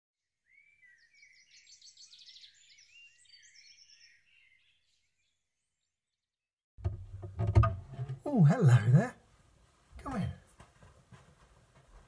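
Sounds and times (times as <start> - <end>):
birds chirping and trilling: 0.4 - 6.2.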